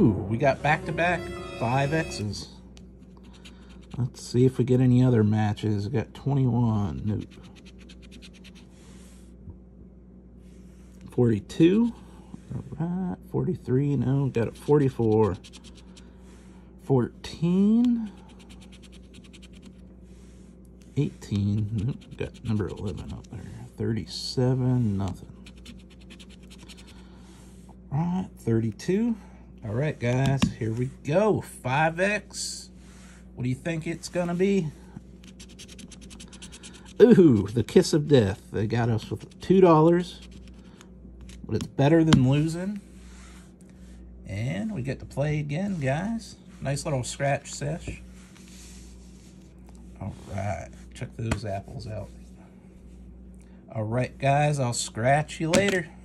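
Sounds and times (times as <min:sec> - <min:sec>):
coin scratching lottery ticket: 0:07.2 - 0:08.7, 0:14.5 - 0:15.8, 0:18.3 - 0:19.8, 0:21.3 - 0:23.3, 0:25.4 - 0:26.8, 0:35.3 - 0:37.6.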